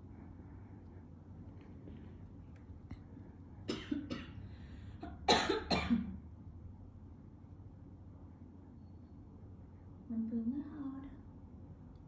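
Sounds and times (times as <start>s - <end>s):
person coughing: 3.7s - 4.4s, 5.0s - 6.2s.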